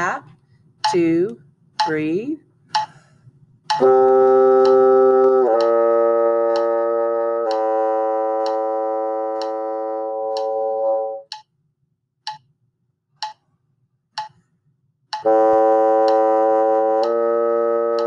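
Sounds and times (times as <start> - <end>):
metronome clicking: 0.8 - 3.1, 3.7 - 11.6, 12.3 - 12.5, 13.2 - 13.4, 14.2 - 14.4, 15.1 - 18.0
bassoon playing slurred notes: 3.7 - 11.3, 15.2 - 18.0.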